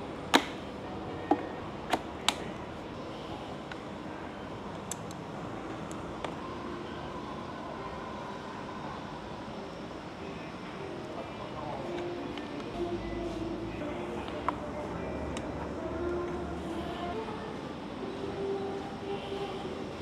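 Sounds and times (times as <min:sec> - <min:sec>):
background noise: 0:00.0 - 0:20.0.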